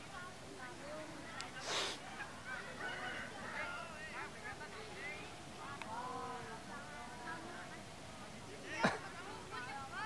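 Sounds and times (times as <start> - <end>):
children calling and shouting: 0.0 - 10.0.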